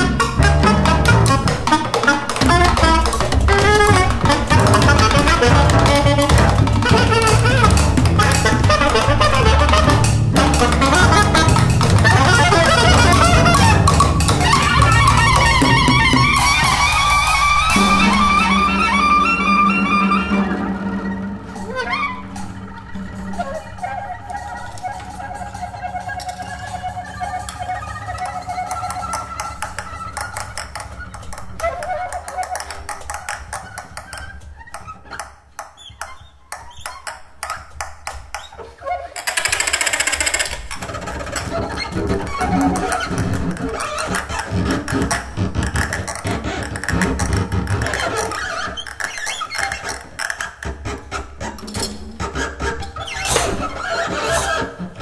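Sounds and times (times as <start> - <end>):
drums and percussion clattering: 0.0 - 18.5, 39.1 - 49.1
soprano saxophone: 0.0 - 22.6
double bass: 0.0 - 26.1.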